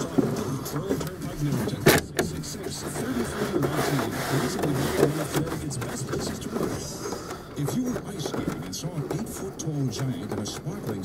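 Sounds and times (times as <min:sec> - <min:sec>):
radio announcer talking: 0:00.0 - 0:11.0.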